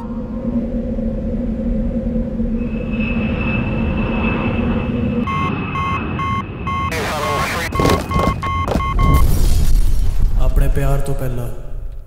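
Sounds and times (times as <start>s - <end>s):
low rumble with hum: 0.0s - 10.6s
electronic warning alarm beeping: 2.7s - 9.4s.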